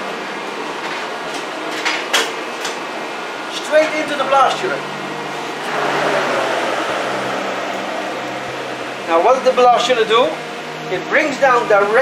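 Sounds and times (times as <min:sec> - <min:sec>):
fan rushing: 0:02.3 - 0:12.0
blast chiller humming: 0:02.4 - 0:12.0.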